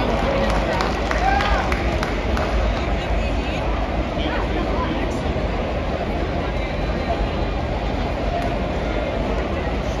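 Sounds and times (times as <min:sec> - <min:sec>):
murmur of crowd chatting: 0:00.0 - 0:10.0.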